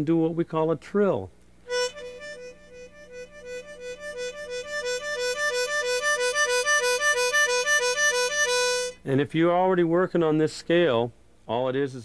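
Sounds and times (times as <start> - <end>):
harmonica trill: 1.7 - 9.0.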